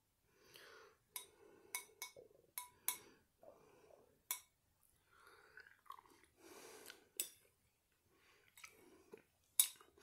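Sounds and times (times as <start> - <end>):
person chewing soup: 5.1 - 7.6, 8.3 - 10.0.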